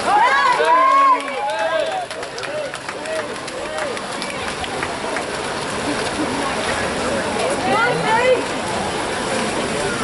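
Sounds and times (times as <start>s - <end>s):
swimmers splashing: 0.0s - 10.0s.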